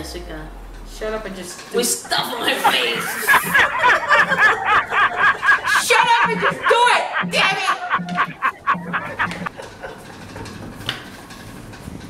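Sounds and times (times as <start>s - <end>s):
person laughing: 2.5s - 9.9s.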